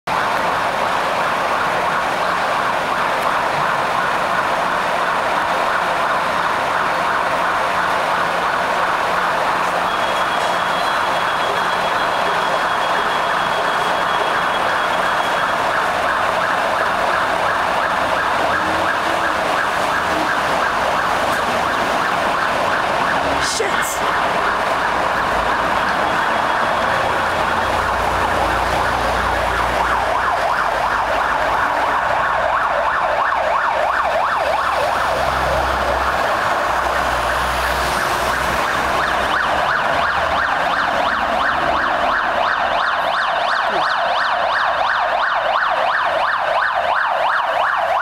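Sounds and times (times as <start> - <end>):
fire engine sirens: 0.0 - 48.0
street traffic: 0.0 - 48.0.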